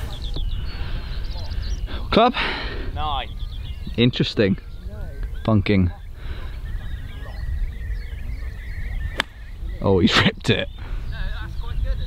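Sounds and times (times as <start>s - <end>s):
wind rumbling on microphone: 0.0s - 12.0s
golf club striking sand and ball: 9.1s - 9.5s.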